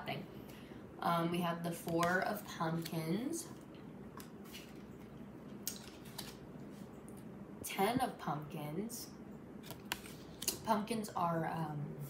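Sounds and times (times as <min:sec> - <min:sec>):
cards rustling: 0:04.2 - 0:06.7, 0:09.6 - 0:10.6.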